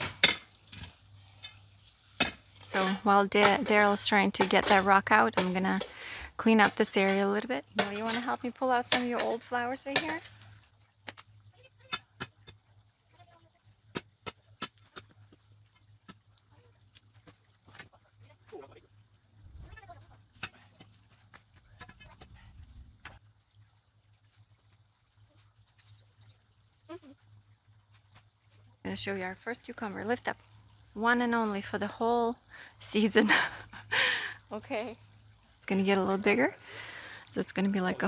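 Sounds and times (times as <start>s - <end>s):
steel bar striking rock: 0.0s - 0.9s.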